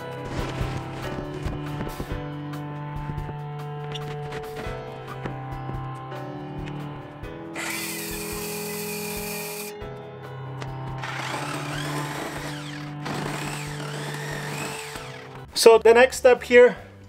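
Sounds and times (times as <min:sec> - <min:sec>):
background music: 0:00.0 - 0:17.0
circular saw cutting wood: 0:07.6 - 0:09.8, 0:11.0 - 0:15.5.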